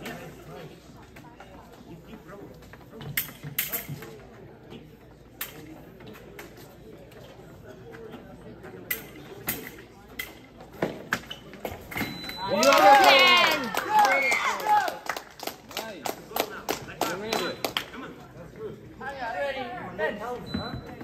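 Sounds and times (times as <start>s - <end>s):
murmur of voices: 0.0s - 21.0s
fencing blades clicking: 8.9s - 10.4s
short steady beep: 12.0s - 12.6s, 20.4s - 21.0s.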